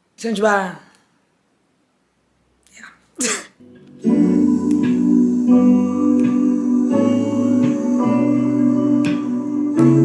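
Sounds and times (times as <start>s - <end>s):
soft music: 3.6s - 10.0s.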